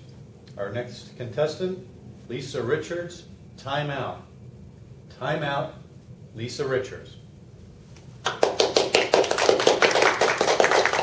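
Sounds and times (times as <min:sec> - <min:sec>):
audience applauding: 0:08.2 - 0:11.0.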